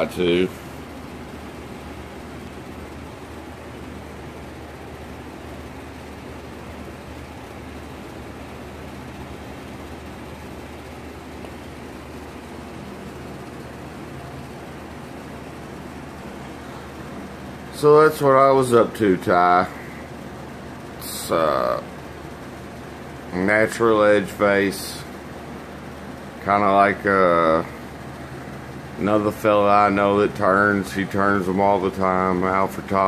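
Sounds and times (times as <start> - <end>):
machinery humming and hissing: 0.0 - 33.0.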